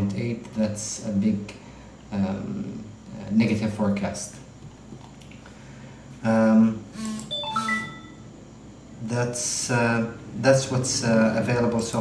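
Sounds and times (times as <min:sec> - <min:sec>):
electronic notification chime: 0:07.3 - 0:08.2.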